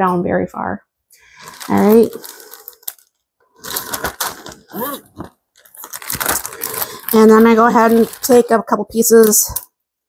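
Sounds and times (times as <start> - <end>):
crunching and clicking handling noises: 1.4 - 8.5.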